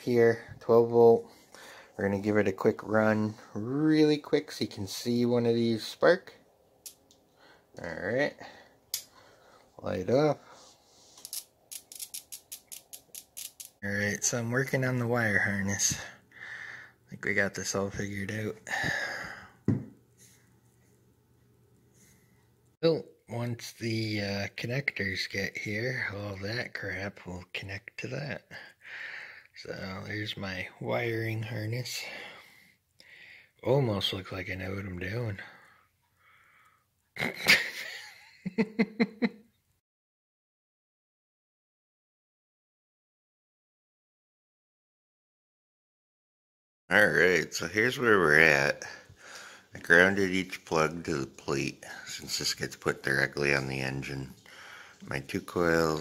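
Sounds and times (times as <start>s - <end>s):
man laughing: 37.2s - 39.5s.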